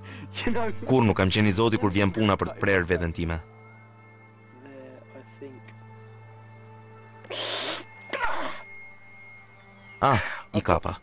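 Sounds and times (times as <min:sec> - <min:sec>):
man's breathy hiss of pain: 0:07.3 - 0:07.9.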